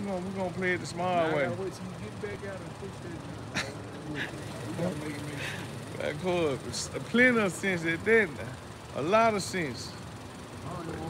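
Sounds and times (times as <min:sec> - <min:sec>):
outdoor background hum: 0:00.0 - 0:11.0.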